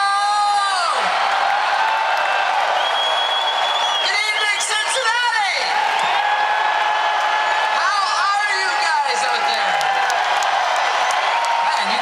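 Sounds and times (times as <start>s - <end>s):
concert crowd cheering: 0.0s - 12.0s.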